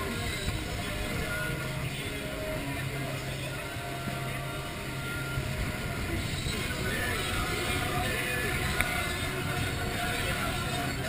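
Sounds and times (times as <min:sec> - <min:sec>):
outboard motor droning: 0:00.0 - 0:11.0
rush of wind and water: 0:00.0 - 0:11.0.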